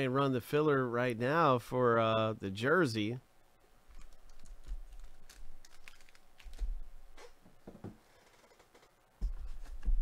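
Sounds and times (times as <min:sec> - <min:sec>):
low bumps on desk: 0:07.4 - 0:08.0.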